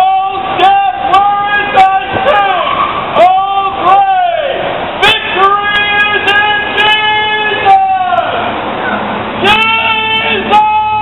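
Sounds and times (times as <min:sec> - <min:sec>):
loud voice calling out: 0:00.0 - 0:08.5, 0:09.4 - 0:11.0.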